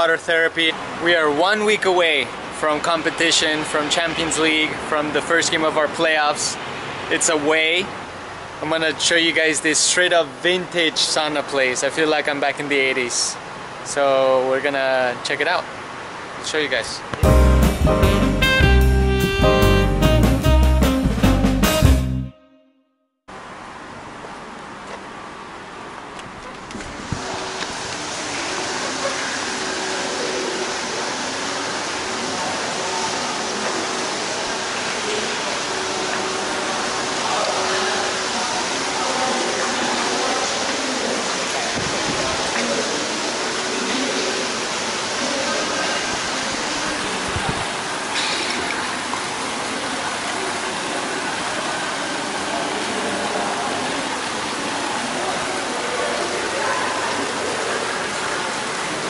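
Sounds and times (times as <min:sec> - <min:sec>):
people chattering: 0:26.6 - 0:59.0
water pouring into pool: 0:26.9 - 0:59.0.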